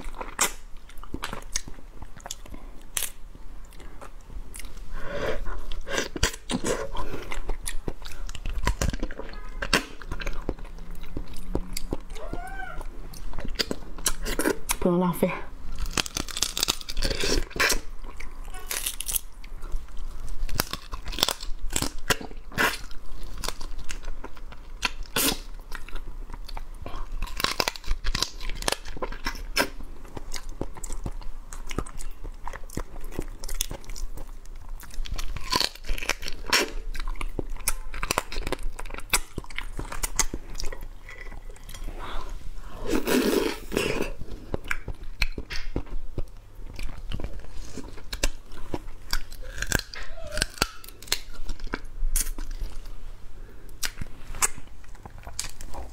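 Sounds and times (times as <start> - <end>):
chewing: 0.0 - 14.8, 15.7 - 52.9, 53.7 - 55.9
crab shell crunching: 15.7 - 41.9, 42.9 - 52.9, 53.7 - 55.9.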